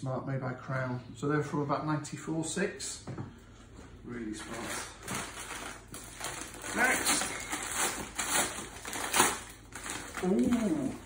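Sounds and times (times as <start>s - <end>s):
paper crackling and rustling: 4.4s - 11.0s
paper envelope tearing open: 5.0s - 11.0s.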